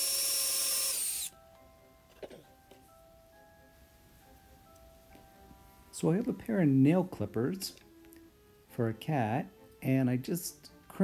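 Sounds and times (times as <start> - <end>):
cordless drill boring into wood: 0.0 - 1.3
soft background music: 0.0 - 11.0.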